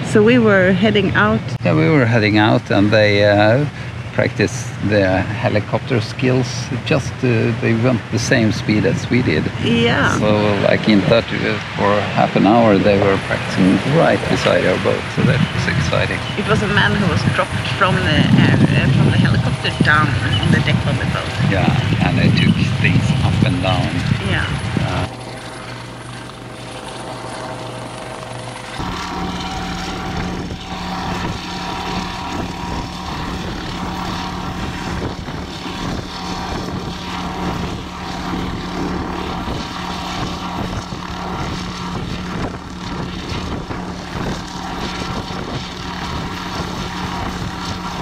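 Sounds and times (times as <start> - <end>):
helicopter rotor beating: 0.0 - 48.0.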